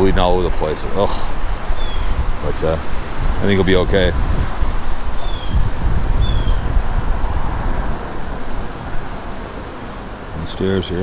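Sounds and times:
highway traffic rushing: 0.0 - 11.0
wind buffeting microphone: 0.0 - 11.0
high falling chirps: 5.1 - 5.6.

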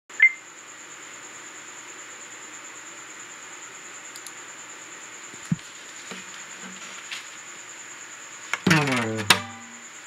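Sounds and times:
faint high-pitched whine: 0.1 - 10.0
steady hiss: 0.5 - 10.0.

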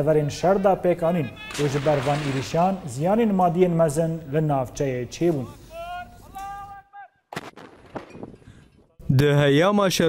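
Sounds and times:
man shouting: 5.4 - 7.2.

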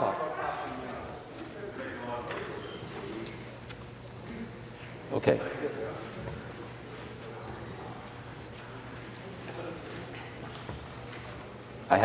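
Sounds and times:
murmur and heckling of voices: 0.0 - 12.0.

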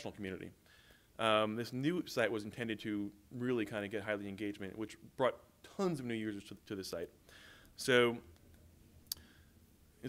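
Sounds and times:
person speaking: 1.2 - 7.2.

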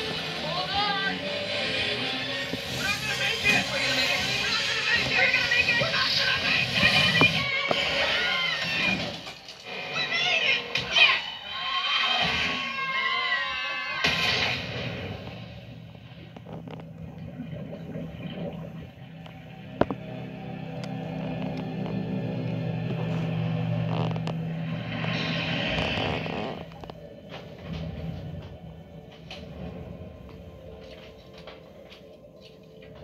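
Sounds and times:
orchestral score with low drone: 0.0 - 10.5, 11.4 - 33.0
characters screaming: 10.9 - 14.6.

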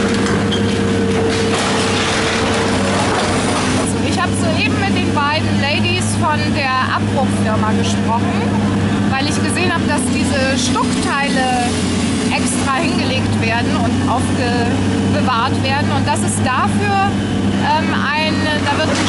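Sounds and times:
excavator diesel engine hum: 0.0 - 19.0
woman talking: 3.8 - 19.0.

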